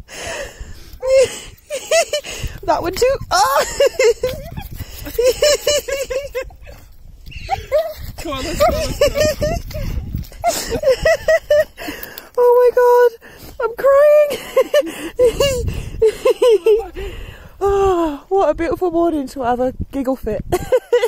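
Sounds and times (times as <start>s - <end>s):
person laughing hard: 1.0s - 12.0s, 14.3s - 17.1s.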